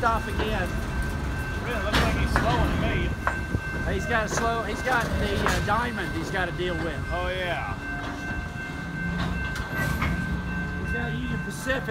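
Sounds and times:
train wheels rumbling on rails: 0:00.0 - 0:11.9
wheels clicking over rail joints: 0:00.0 - 0:11.9.

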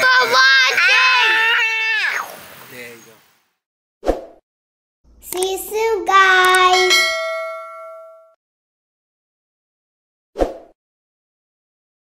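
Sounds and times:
child singing wordless phrase: 0:05.2 - 0:07.0
clicks: 0:05.3 - 0:05.6, 0:06.4 - 0:06.7
bell-like ding: 0:06.6 - 0:08.4.

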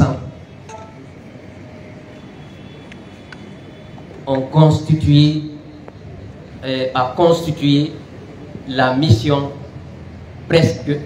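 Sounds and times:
low urban background rumble: 0:00.0 - 0:11.0.

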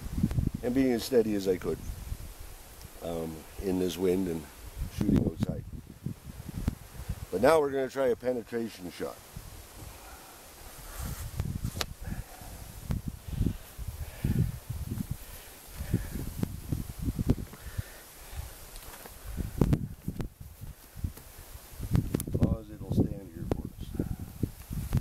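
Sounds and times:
wind buffeting microphone: 0:00.0 - 0:07.6, 0:09.2 - 0:25.0
rustling handling noise: 0:18.5 - 0:19.2.

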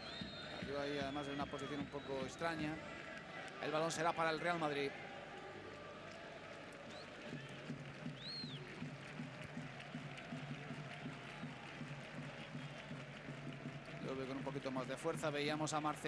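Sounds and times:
stadium crowd hum: 0:00.0 - 0:16.0.

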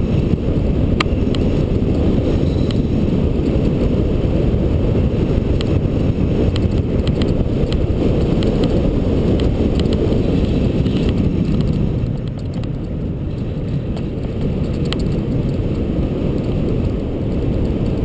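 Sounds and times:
tyres rumbling on asphalt: 0:00.0 - 0:18.0
wind on microphone: 0:00.0 - 0:18.0
sharp clicks from road bumps: 0:00.1 - 0:04.1, 0:05.0 - 0:18.0.

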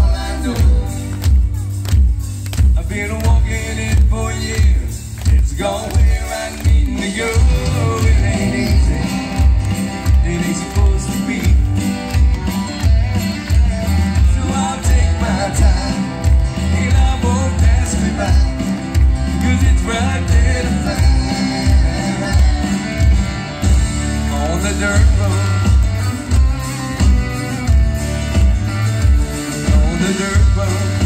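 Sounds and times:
drum and bass beat: 0:00.0 - 0:31.0
electric and acoustic guitars: 0:00.0 - 0:31.0.

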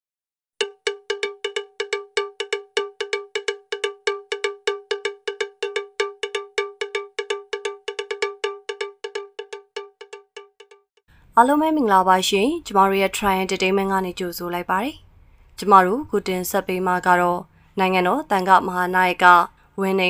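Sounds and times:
cowbell-like metallic tone struck: 0:00.6 - 0:10.8.

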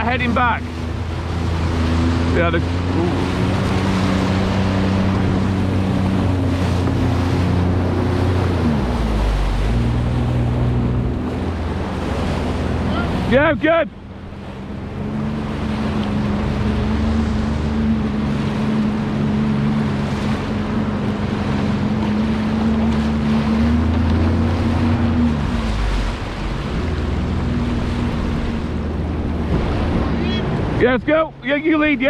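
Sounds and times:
churning water and spray: 0:00.0 - 0:32.0
jet ski engine humming: 0:00.0 - 0:32.0
wind on microphone: 0:14.1 - 0:31.2.

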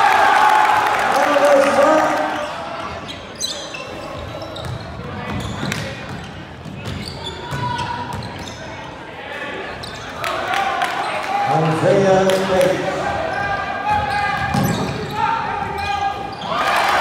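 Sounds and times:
sneaker squeaks: 0:02.3 - 0:09.1, 0:09.7 - 0:10.2, 0:13.2 - 0:16.6.

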